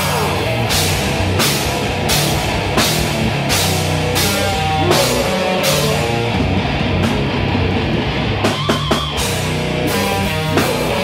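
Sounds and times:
death metal band playing live: 0.0 - 11.0.

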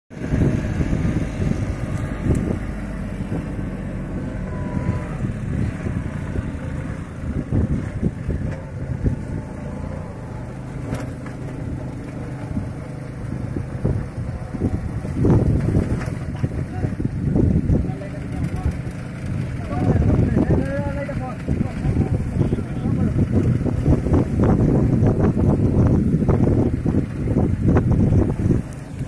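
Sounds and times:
tractor engine running under load: 0.1 - 29.0.

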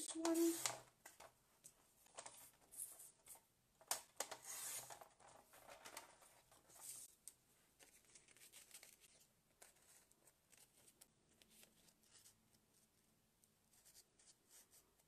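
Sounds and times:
paper rustling and sliding: 0.0 - 0.8, 4.2 - 7.2.

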